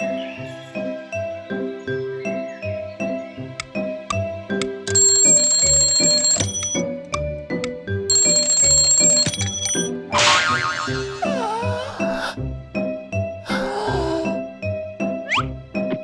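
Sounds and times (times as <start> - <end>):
cartoon background music: 0.0 - 16.0
alarm clock bell ringing: 4.9 - 6.8, 8.1 - 9.9.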